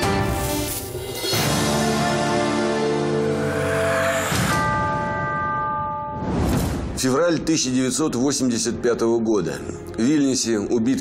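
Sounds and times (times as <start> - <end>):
bell-like chord ringing: 3.3 - 6.3.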